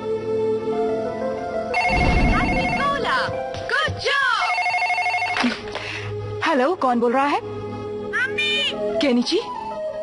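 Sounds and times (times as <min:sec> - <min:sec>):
telephone ringing electronic trill: 0:01.8 - 0:03.2, 0:04.5 - 0:05.4
low thump: 0:01.8 - 0:03.7.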